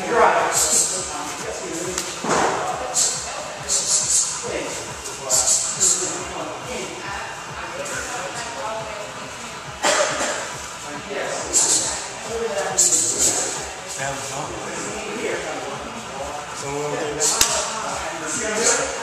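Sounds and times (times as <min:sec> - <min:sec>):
background music: 0:00.0 - 0:19.0
indistinct voices: 0:00.0 - 0:19.0.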